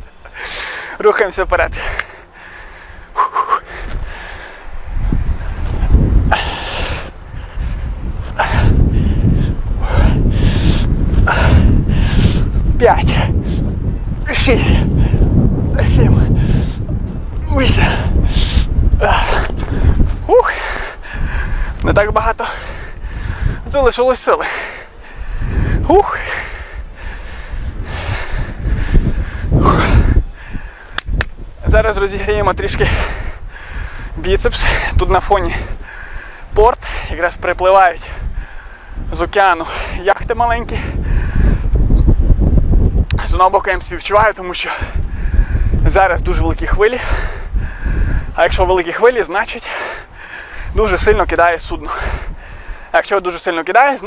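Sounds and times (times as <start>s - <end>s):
low wind rumble on microphone: 0.0s - 54.0s
man breathing hard: 0.2s - 1.0s, 1.7s - 13.9s, 14.6s - 15.4s, 16.2s - 17.0s, 17.8s - 21.8s, 22.4s - 23.7s, 24.4s - 31.0s, 32.8s - 37.2s, 38.0s - 40.0s, 40.8s - 42.0s, 44.8s - 45.8s, 46.9s - 48.4s, 49.6s - 50.8s, 51.8s - 53.0s.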